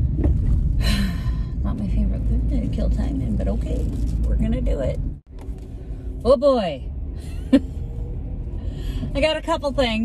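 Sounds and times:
car cabin rumble: 0.0 - 7.6.

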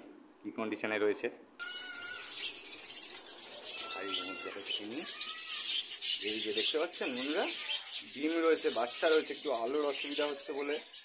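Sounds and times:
cage birds chattering and calling: 1.6 - 11.0.

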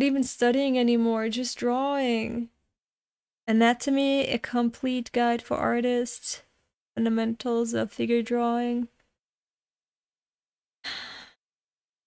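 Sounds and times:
woman sighing: 10.9 - 11.4.

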